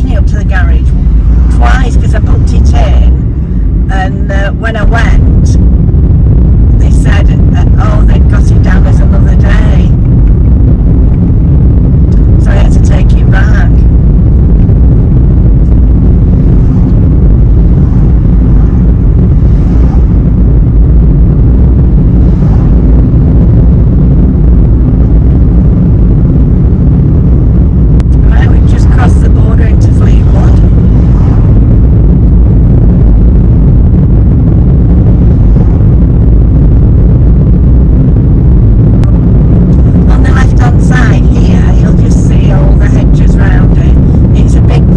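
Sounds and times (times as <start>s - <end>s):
car road and engine rumble: 0.0s - 44.9s.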